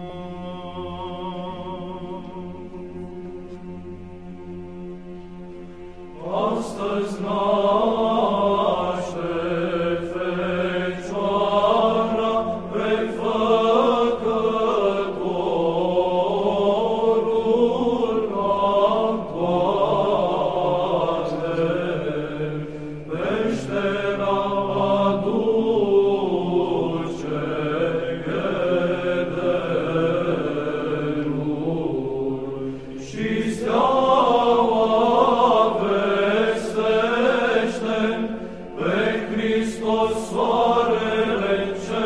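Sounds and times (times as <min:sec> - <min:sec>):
steady held drone: 0:00.0 - 0:42.0
sung chant melody: 0:00.0 - 0:42.0.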